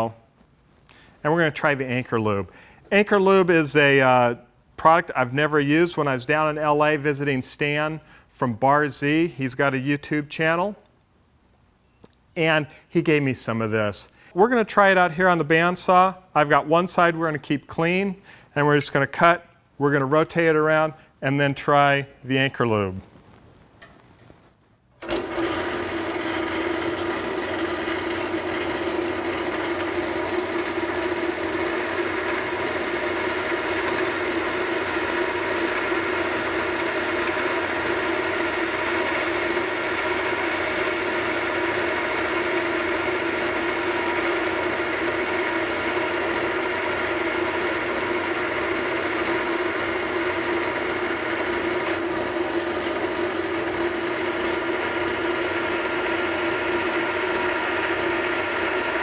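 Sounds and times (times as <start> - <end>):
bandsaw cutting metal bar: 25.0 - 59.0.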